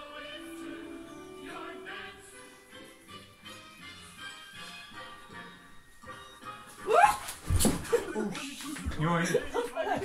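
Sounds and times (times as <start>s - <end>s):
body thumping on floor: 7.2s - 8.1s.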